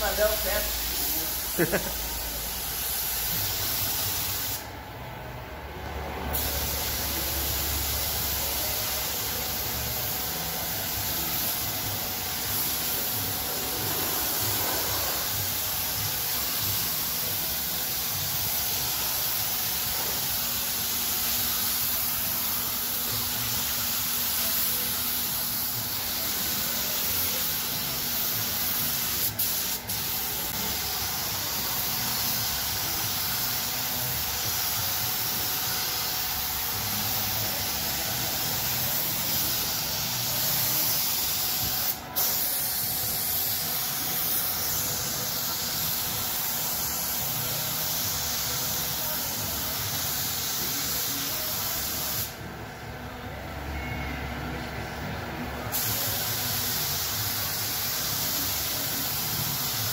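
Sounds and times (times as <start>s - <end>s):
paint spray gun hissing: 0.0s - 4.7s, 6.4s - 52.4s, 55.7s - 59.9s.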